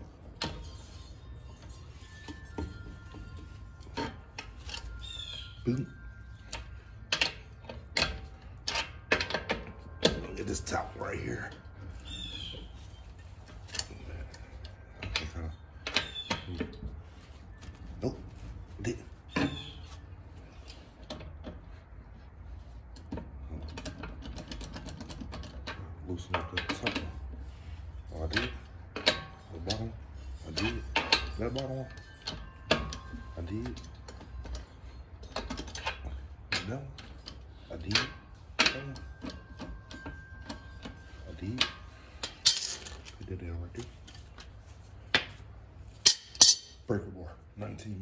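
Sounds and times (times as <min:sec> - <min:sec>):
metal clinks and knocks: 0:00.0 - 0:48.0.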